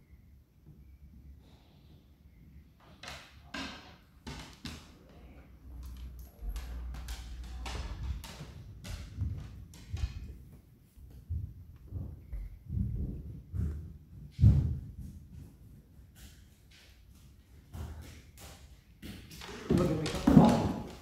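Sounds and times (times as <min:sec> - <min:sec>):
footsteps: 0:04.8 - 0:21.0.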